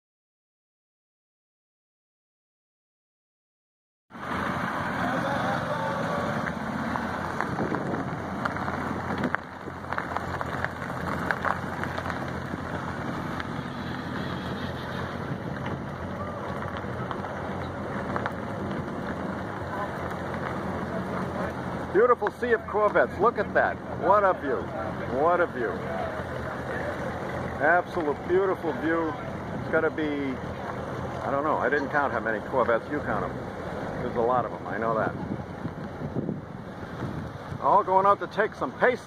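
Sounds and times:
car engines running at low speed: 4.1 - 39.0
background voices: 4.2 - 36.0
wind on microphone: 7.2 - 9.8, 35.1 - 37.6.

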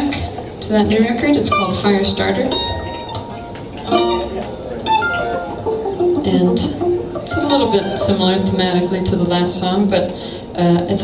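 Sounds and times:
low voices: 0.0 - 11.0
acoustic guitar plucking: 0.8 - 10.2.

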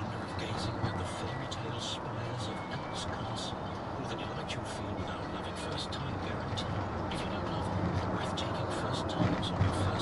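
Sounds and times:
car road and engine noise: 0.0 - 10.0
faint speech: 0.0 - 10.0.

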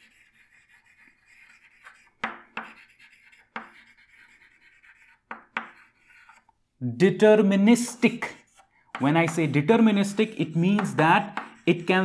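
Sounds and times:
chalk tapping on board: 0.0 - 6.5, 7.8 - 12.0
chalk scratching on chalkboard: 0.0 - 6.6, 7.8 - 12.0.

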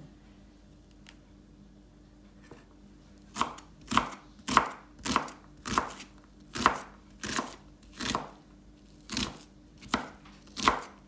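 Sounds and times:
knife chopping on wooden board: 3.3 - 8.4, 9.1 - 11.0.

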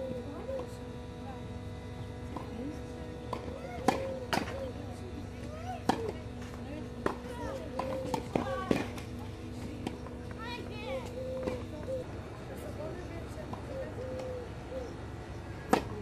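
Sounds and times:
tennis ball bouncing on clay: 15.7 - 16.0
tennis ball hit with rackets: 15.7 - 16.0.

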